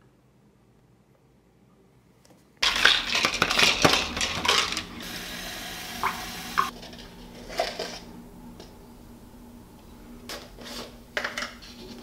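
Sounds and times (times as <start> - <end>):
plastic shaker bottle rattling: 2.6 - 5.0
steady hiss: 3.1 - 12.0.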